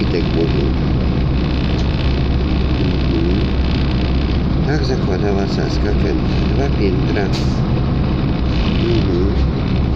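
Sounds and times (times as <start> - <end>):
road vehicle rumble: 0.0 - 9.9.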